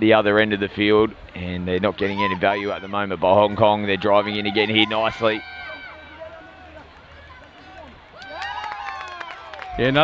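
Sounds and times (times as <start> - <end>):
distant players calling out: 1.9 - 8.4
overlapping shouts: 4.1 - 10.0.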